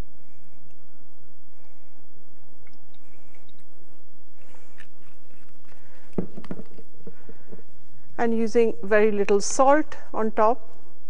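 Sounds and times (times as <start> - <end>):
faint handling sounds: 2.7 - 8.2.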